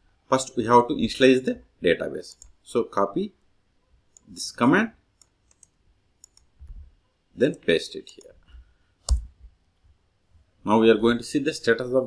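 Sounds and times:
mouse and keyboard clicks: 5.2 - 6.6, 7.4 - 8.4, 9.0 - 9.3.

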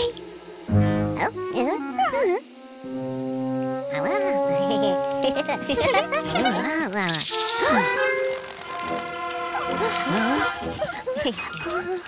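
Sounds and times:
cartoon background music: 0.0 - 12.0
falling rattle sound effect: 6.4 - 10.1.

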